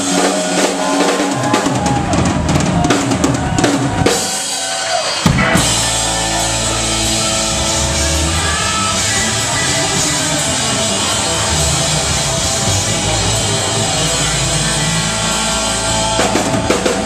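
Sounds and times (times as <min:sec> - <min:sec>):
drum kit playing: 0:00.0 - 0:17.0
full rock band playing: 0:00.0 - 0:17.0
sliding pitched guitar notes: 0:05.3 - 0:17.0.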